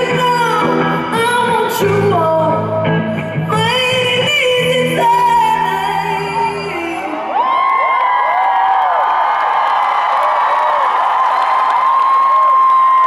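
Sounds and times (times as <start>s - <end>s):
high-pitched screams and whoops: 7.0s - 13.0s
audience cheering and applauding: 7.2s - 13.0s.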